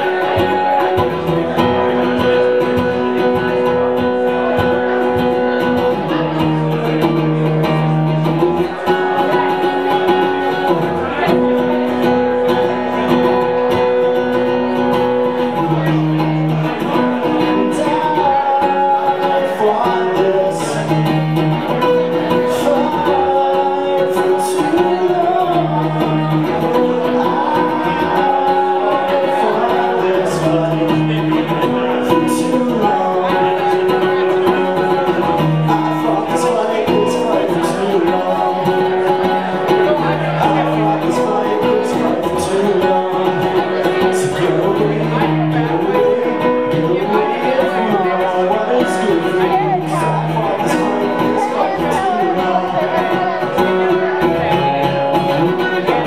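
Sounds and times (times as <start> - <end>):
acoustic guitar: 0.0 - 56.0
man singing: 0.0 - 56.0.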